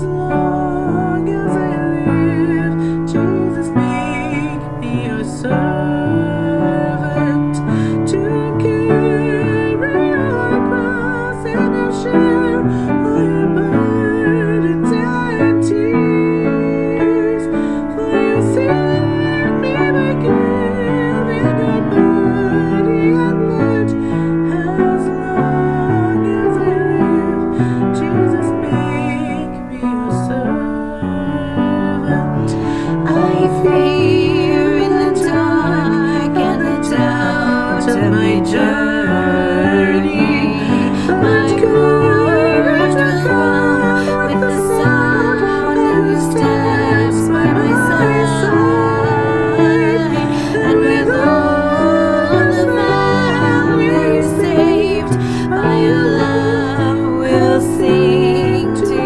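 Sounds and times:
piano accompaniment: 0.0s - 59.0s
woman singing a hymn: 0.0s - 59.0s.

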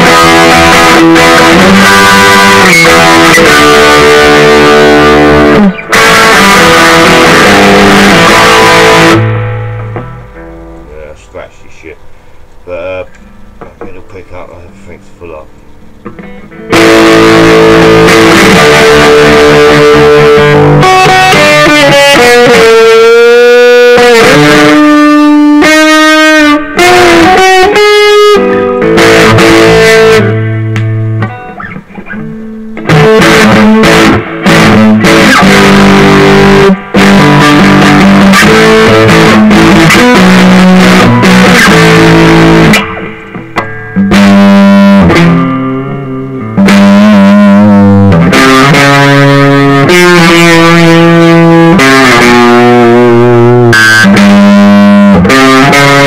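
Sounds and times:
loud electric guitar through amplifier: 0.0s - 56.0s.

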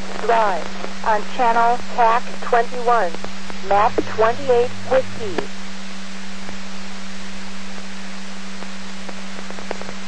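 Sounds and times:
low hum tone: 0.0s - 10.0s.

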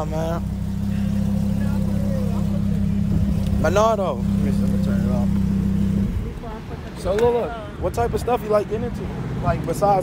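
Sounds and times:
car engine idling: 0.0s - 9.1s.

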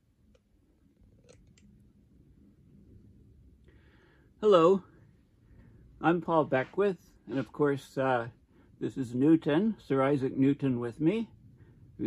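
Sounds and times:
small clicks: 1.1s - 1.7s.

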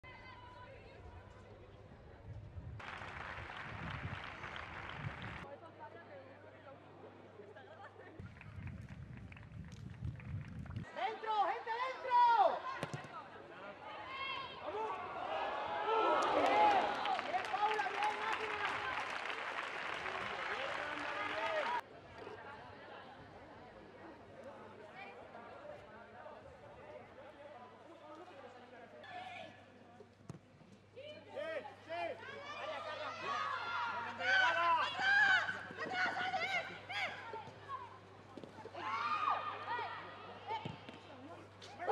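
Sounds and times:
wind buffeting microphone: 2.3s - 5.4s, 8.2s - 10.9s.

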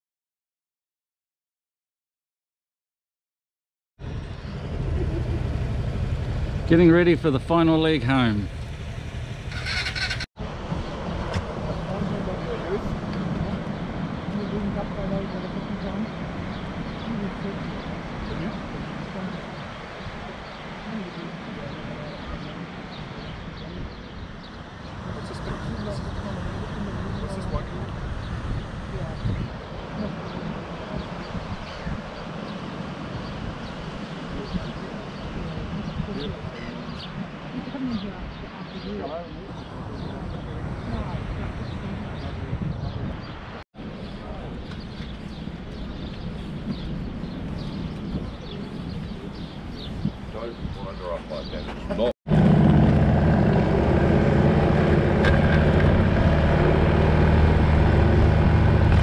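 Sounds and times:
outdoor background noise: 4.0s - 59.0s
indistinct voices talking: 4.3s - 8.6s.

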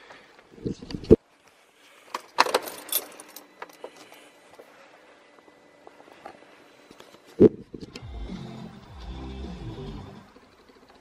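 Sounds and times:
car keys jangling: 2.4s - 3.6s.

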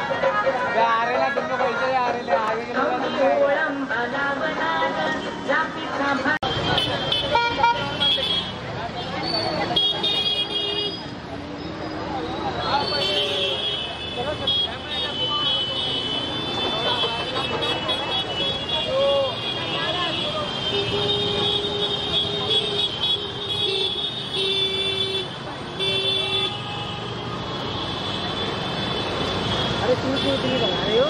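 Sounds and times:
crowd voices: 0.0s - 23.6s
horns honking: 6.4s - 11.2s, 12.4s - 31.0s.

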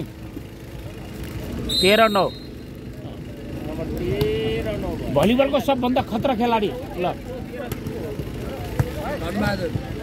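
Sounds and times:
open-air background noise: 0.0s - 10.0s.

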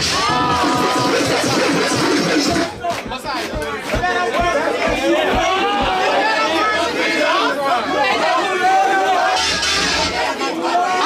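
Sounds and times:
dance music with low beat: 0.0s - 6.0s
crowd talking and calling out: 0.0s - 11.0s.

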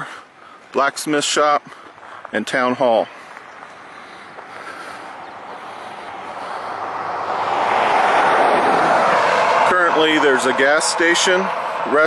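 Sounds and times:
pickup truck passing: 1.3s - 12.0s.

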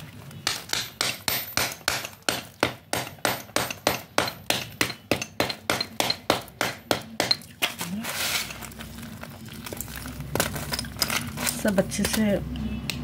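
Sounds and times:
hammer crushing slate: 0.4s - 8.7s.

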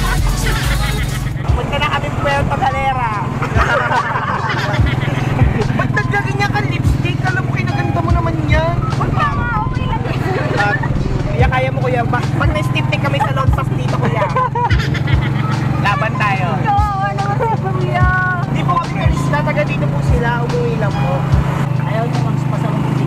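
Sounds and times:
people talking and laughing: 0.0s - 22.9s
vehicle engine droning: 0.0s - 23.0s
low thumps: 1.0s - 21.8s.

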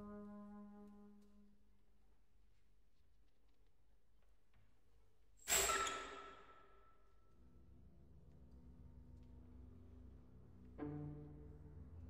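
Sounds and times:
quiet orchestral playing: 0.0s - 1.5s, 7.8s - 12.0s.

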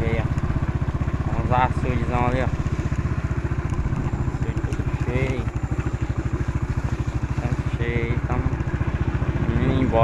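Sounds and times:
small motorcycle engine running: 0.0s - 10.0s.

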